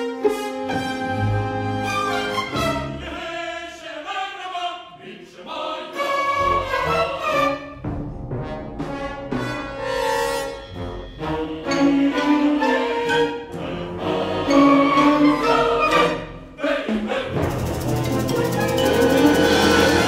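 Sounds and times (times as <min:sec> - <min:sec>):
symphony orchestra with brass: 0:00.0 - 0:03.4, 0:05.9 - 0:20.0.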